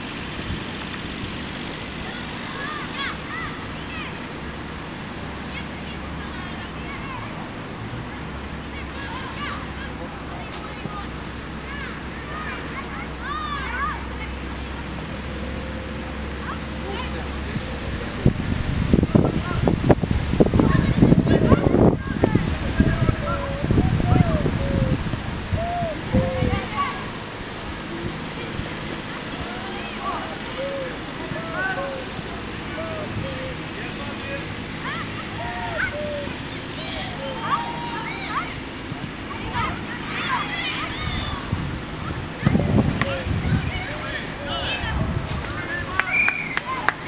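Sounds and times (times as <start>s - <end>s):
outdoor background rumble and hiss: 0.0s - 47.0s
children shouting: 1.8s - 18.3s, 20.4s - 47.0s
wind buffeting microphone: 16.1s - 37.5s, 38.5s - 47.0s.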